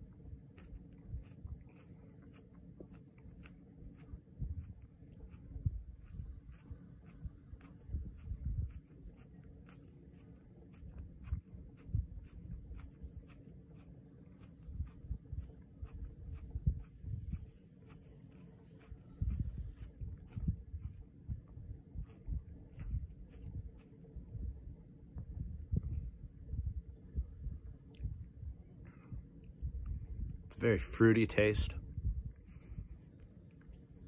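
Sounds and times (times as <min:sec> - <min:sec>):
chewing close to microphone: 0:00.0 - 0:26.9.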